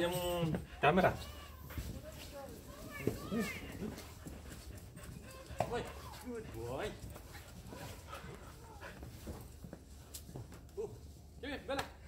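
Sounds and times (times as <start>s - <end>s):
scuffling in snow: 1.4s - 4.1s.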